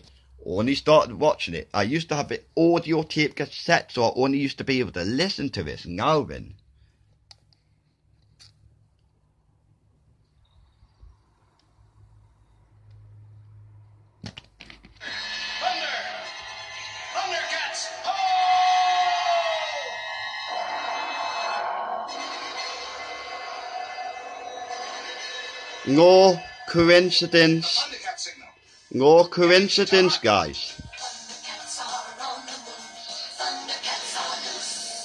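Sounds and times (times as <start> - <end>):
room hum: 5.4 - 29.2
cartoon music with voices on tv: 15.0 - 35.0.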